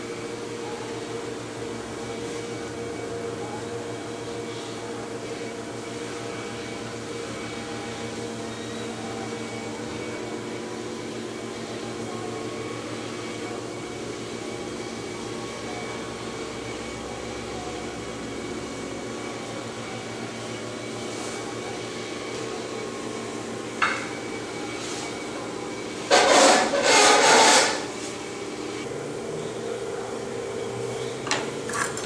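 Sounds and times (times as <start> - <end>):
potter's wheel motor humming: 0.0 - 32.0.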